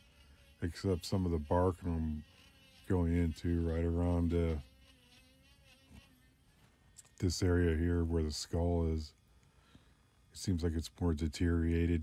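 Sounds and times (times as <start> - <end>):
rotary carving tool whine: 0.0 - 12.0.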